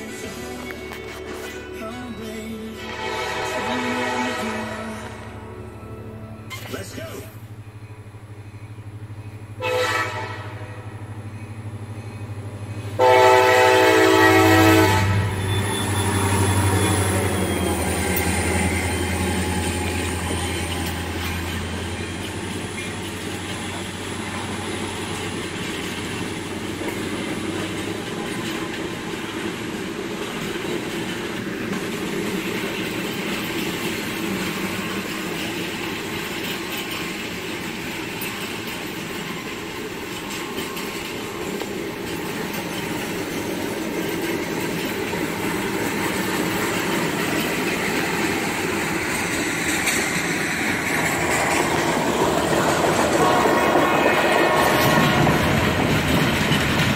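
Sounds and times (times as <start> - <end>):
train wheels rumbling on rails: 6.5 - 56.9.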